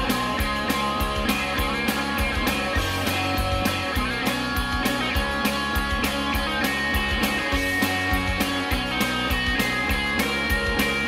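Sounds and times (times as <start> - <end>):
rock music with guitar: 0.0 - 11.0.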